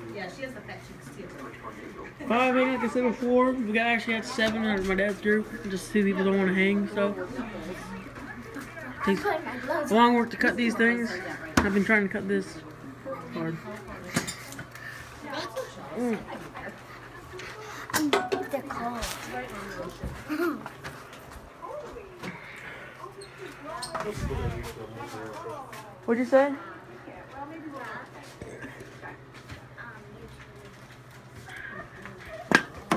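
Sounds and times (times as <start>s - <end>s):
faint voices: 0.0s - 32.9s.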